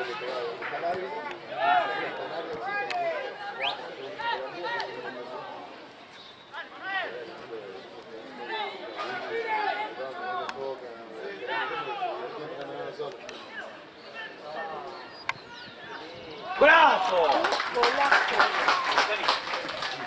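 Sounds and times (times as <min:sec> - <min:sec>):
players shouting to each other: 0:01.5 - 0:05.0, 0:08.4 - 0:10.6, 0:13.5 - 0:17.3.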